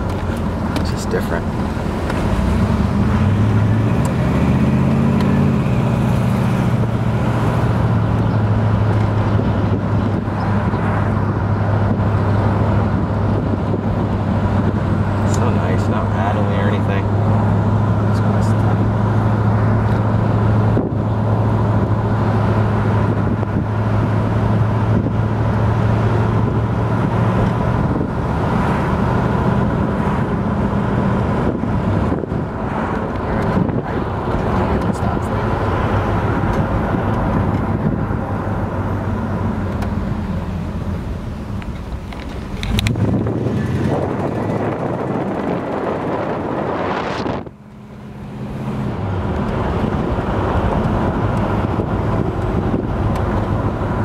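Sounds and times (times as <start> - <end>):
car engine while driving: 0.0 - 54.0.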